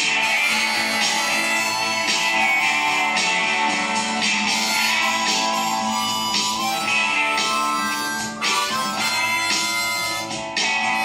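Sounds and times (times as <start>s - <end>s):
guitar accompaniment: 0.0s - 11.0s
harmonica melody: 0.0s - 11.0s.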